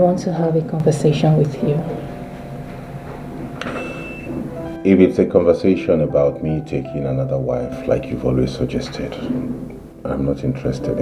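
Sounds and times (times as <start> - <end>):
low hum: 0.0 - 5.4.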